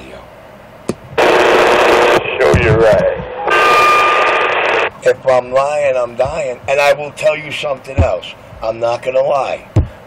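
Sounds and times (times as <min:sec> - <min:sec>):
radio static hiss with whistle: 0:01.2 - 0:05.4
voice over radio: 0:02.0 - 0:03.7.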